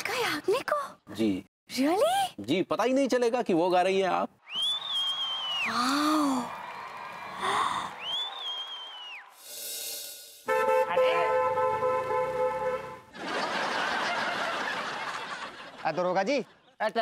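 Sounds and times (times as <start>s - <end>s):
held brass-like chord: 10.5s - 13.1s.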